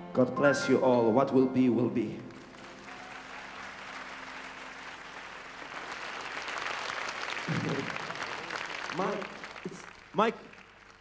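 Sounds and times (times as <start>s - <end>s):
audience applauding: 2.2s - 11.0s.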